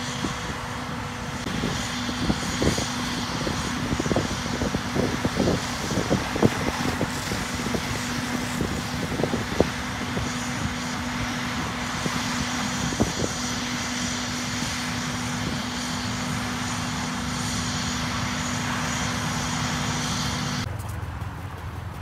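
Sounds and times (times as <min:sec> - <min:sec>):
fire hose spraying water: 0:00.0 - 0:20.7
engine drone: 0:00.0 - 0:22.0.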